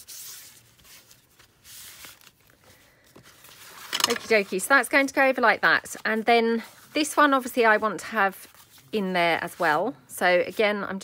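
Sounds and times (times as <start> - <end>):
paper rustling: 0.0 - 9.8.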